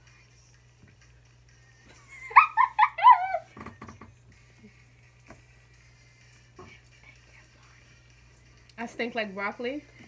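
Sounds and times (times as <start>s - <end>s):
high-pitched yelps: 2.3s - 3.5s.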